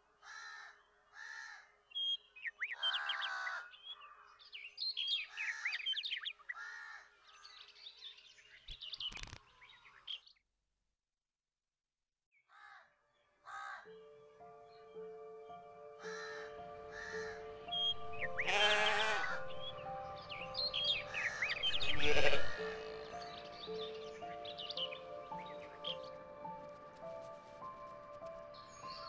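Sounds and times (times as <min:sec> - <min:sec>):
crows cawing: 0:00.2 - 0:01.7, 0:02.8 - 0:04.4, 0:05.3 - 0:07.1, 0:12.5 - 0:13.9, 0:16.0 - 0:19.8, 0:20.8 - 0:23.6.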